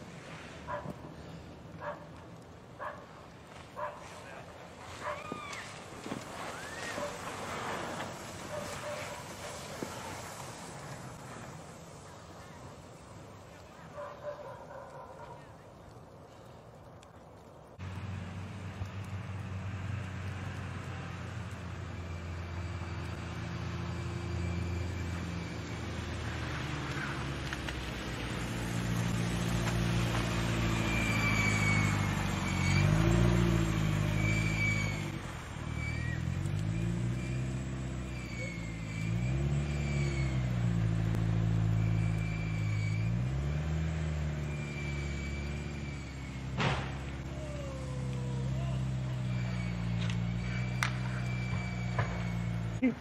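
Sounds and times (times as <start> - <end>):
car engine revving: 17.8 - 52.9.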